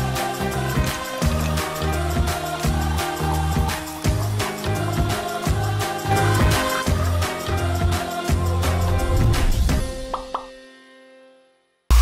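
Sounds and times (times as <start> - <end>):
jingle music with a beat: 0.0 - 10.7.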